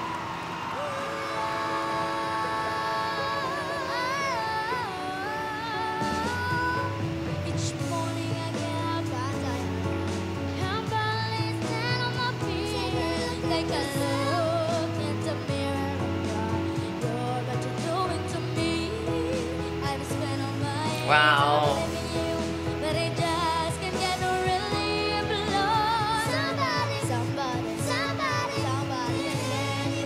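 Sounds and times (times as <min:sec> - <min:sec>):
boys singing a pop ballad: 0:00.7 - 0:30.0
instrumental backing: 0:02.1 - 0:30.0
sustained bass line: 0:19.9 - 0:24.0.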